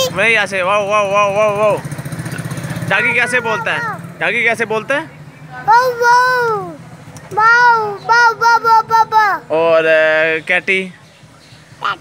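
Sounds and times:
small engine idling: 0.0 - 4.9
child imitating a dog: 3.0 - 4.1, 5.7 - 9.5.

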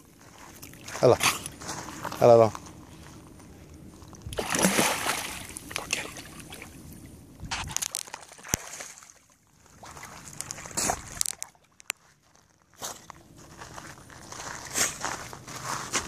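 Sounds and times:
water sloshing and splashing: 3.8 - 12.2.

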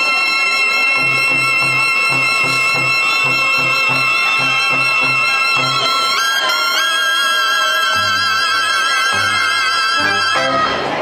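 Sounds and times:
reed and brass band playing: 0.0 - 11.0.

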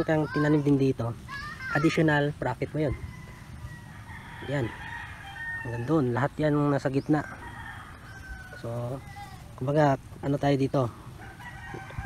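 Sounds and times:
rooster crowing faintly: 2.7 - 9.5, 11.1 - 12.0.

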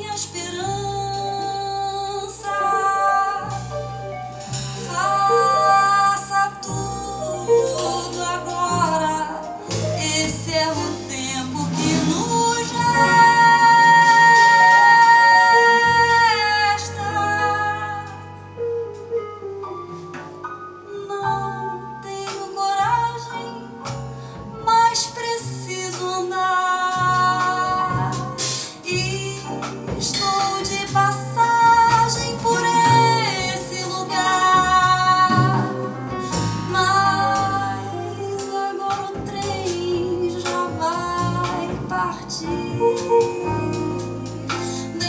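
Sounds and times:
woman singing into a microphone: 0.0 - 3.8, 4.8 - 18.4, 20.8 - 45.0
drums: 0.0 - 45.0
jazz band accompaniment: 0.0 - 45.0
piano: 0.0 - 45.0
upright bass: 0.0 - 45.0
low double bass note: 27.0 - 38.4.

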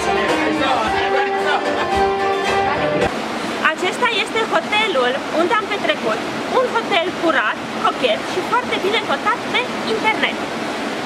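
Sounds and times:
bouzouki and keyboard music: 0.0 - 3.1
steady rushing noise: 0.0 - 11.0
woman speaking: 3.6 - 10.4.

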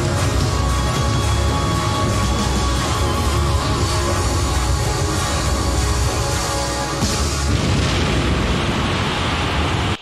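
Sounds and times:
concert crowd cheering and screaming: 0.0 - 7.5.

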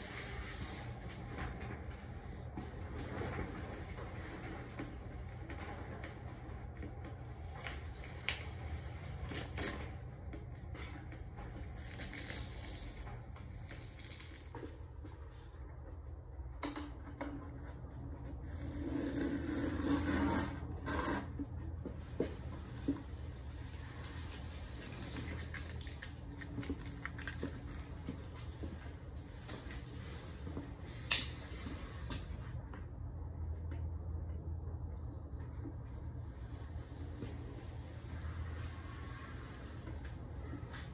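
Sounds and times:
low steady hum: 0.0 - 40.9
tape peeling off: 7.9 - 10.0, 11.6 - 14.8.

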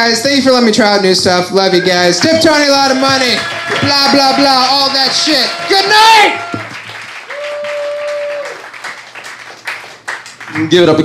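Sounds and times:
person cheering: 1.8 - 8.6
audience applauding: 2.2 - 11.0.

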